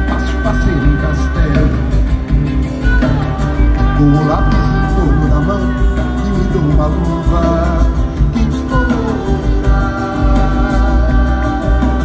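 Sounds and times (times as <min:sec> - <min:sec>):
acoustic guitar playing: 0:00.0 - 0:12.0
drums: 0:00.0 - 0:12.0
person singing: 0:00.0 - 0:12.0.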